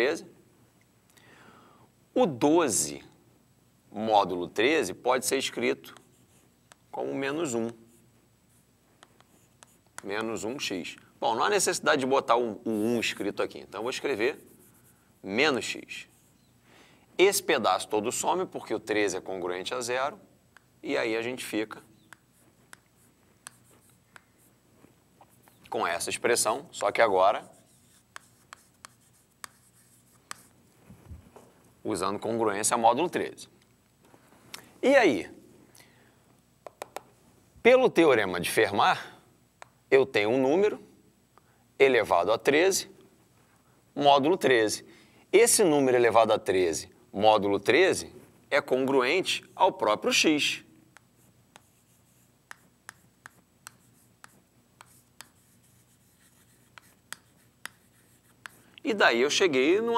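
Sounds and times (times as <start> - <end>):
chalk tapping on chalkboard: 22.0 - 24.5, 26.8 - 30.6, 36.6 - 37.1, 50.9 - 58.6.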